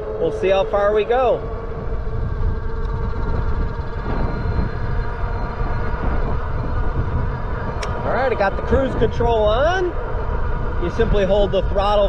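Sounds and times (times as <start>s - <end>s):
electric motor whine: 0.0s - 12.0s
wind buffeting microphone: 0.0s - 12.0s.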